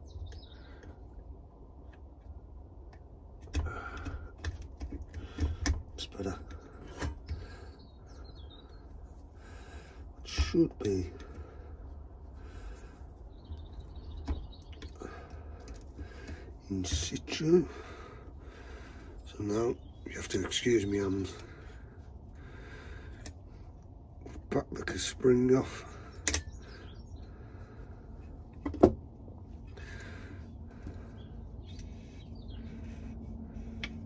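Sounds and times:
steady low rumble: 0.0 - 34.0.

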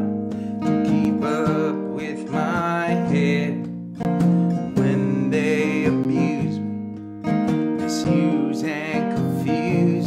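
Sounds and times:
man singing: 0.0 - 6.8, 7.6 - 10.0
acoustic guitar: 0.0 - 10.0.

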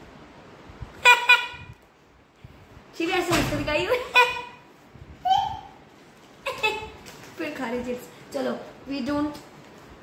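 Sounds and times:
high-pitched laughs: 3.9 - 4.6, 6.4 - 7.1.

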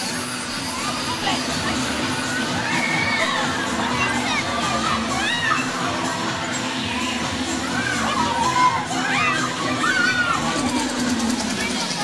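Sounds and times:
riders screaming and shouting: 0.0 - 12.0.

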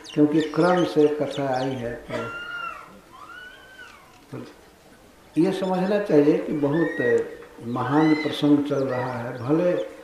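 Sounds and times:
faint high animal call: 1.9 - 4.2, 6.5 - 9.2.

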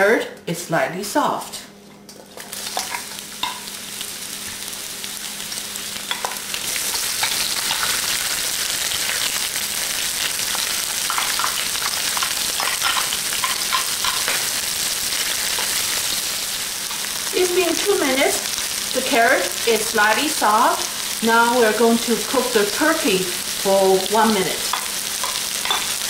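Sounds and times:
vegetables sizzling in oil: 2.3 - 26.0.

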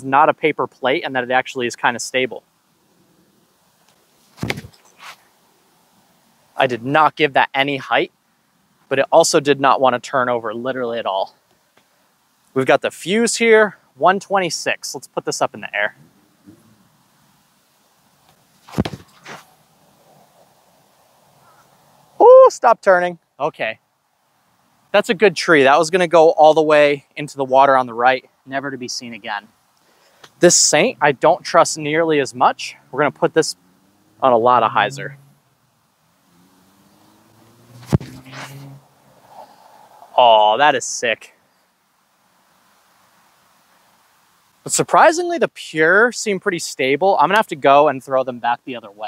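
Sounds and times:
disc whooshing on release: 4.2 - 5.3, 18.3 - 20.5, 37.6 - 40.1
disc rushing through air: 36.3 - 40.6.

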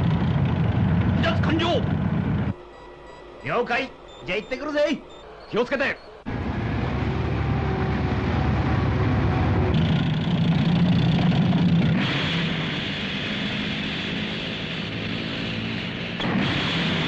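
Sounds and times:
track noise: 0.0 - 17.0
tracked vehicle engine drone: 0.0 - 17.0.

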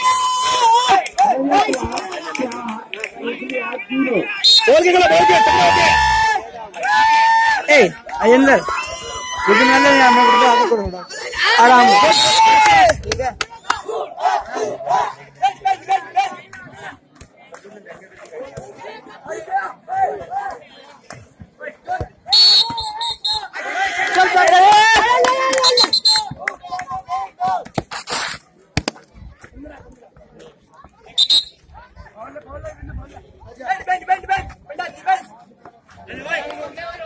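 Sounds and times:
players and spectators shouting: 0.0 - 17.0, 18.3 - 21.0, 21.6 - 27.7, 31.2 - 31.6.

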